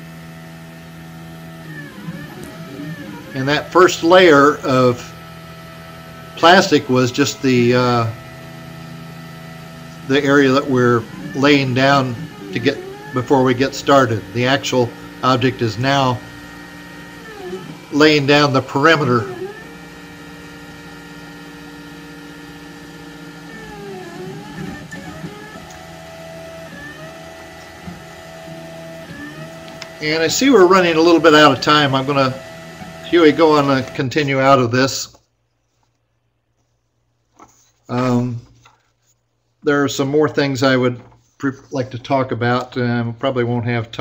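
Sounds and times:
higher motor tone: 0.0s - 34.2s
stepper motors whining: 0.0s - 34.2s
steady low hum: 0.0s - 36.0s.

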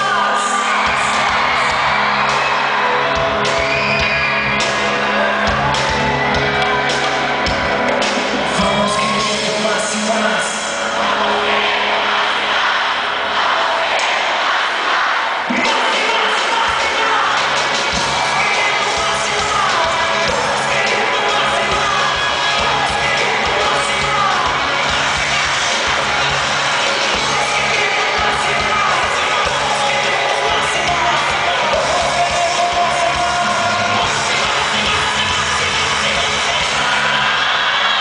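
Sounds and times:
live rock band: 0.0s - 11.8s, 15.5s - 38.0s
crowd cheering and shouting: 0.0s - 38.0s
steady drum beat: 15.5s - 37.1s.

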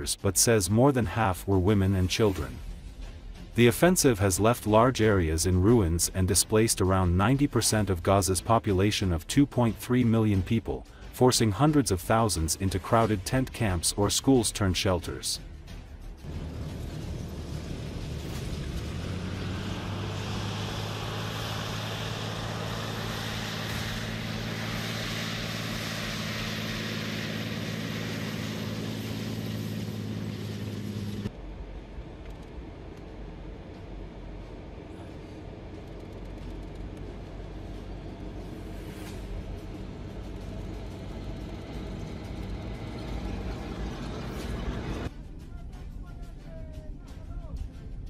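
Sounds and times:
tank engine drone: 0.0s - 45.3s
tank tracks rushing: 16.2s - 31.3s, 33.5s - 45.1s.

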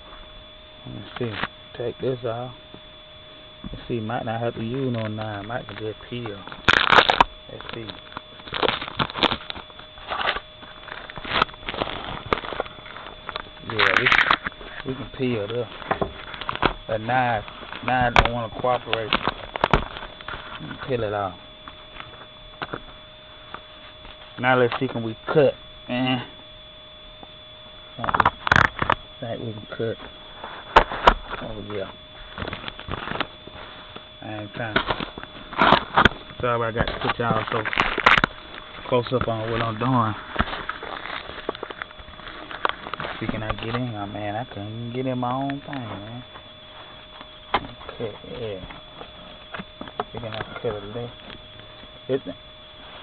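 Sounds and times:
packing tape tearing off cardboard: 4.6s - 22.9s, 28.0s - 29.0s, 30.3s - 34.0s, 34.6s - 43.9s.

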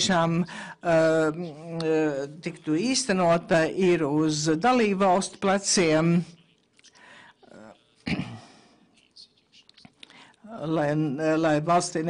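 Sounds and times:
faint breath: 0.4s - 0.8s, 6.8s - 7.5s, 10.0s - 10.4s.

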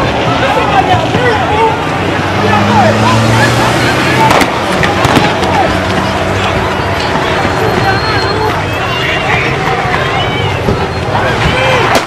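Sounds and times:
vehicle engine running: 0.0s - 11.6s
people shouting: 0.0s - 12.0s.

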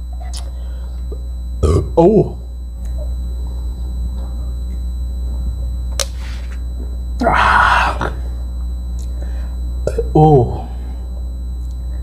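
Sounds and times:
man belching: 1.6s - 2.4s, 7.2s - 8.2s, 9.8s - 10.6s
man saying oh: 1.6s - 2.4s, 7.2s - 8.2s, 9.9s - 10.7s.

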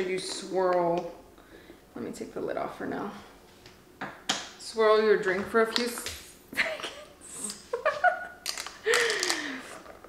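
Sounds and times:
woman laughing: 6.5s - 9.8s.

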